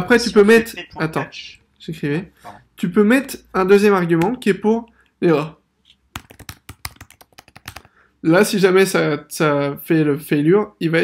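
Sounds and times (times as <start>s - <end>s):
computer keyboard typing: 6.1s - 7.9s.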